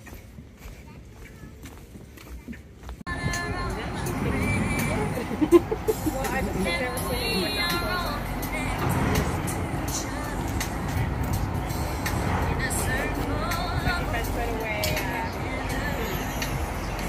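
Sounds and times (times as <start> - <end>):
boat engine rumbling: 0.0 - 17.0
people talking: 0.1 - 2.6, 3.2 - 17.0.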